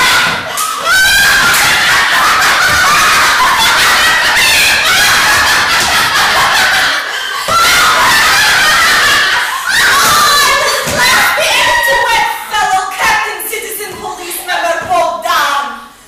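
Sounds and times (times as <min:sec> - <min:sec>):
women laughing hysterically: 0:00.0 - 0:12.1.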